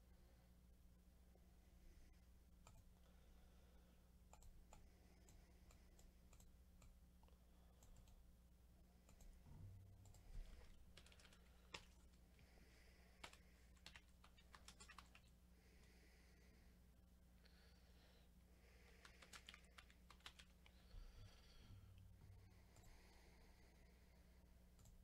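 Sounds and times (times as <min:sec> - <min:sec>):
low steady hum: 0:00.0 - 0:25.0
faint clicks and taps: 0:09.0 - 0:12.5, 0:18.8 - 0:21.0.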